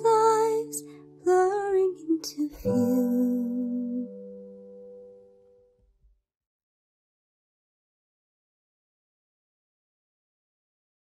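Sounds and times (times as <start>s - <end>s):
woman singing: 0.0s - 4.4s.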